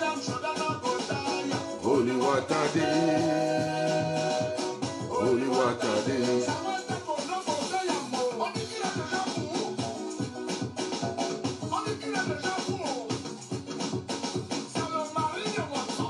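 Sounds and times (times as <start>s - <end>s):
person singing: 0.0s - 10.5s, 11.6s - 13.3s, 14.7s - 16.0s
busy regular percussion: 0.0s - 16.0s.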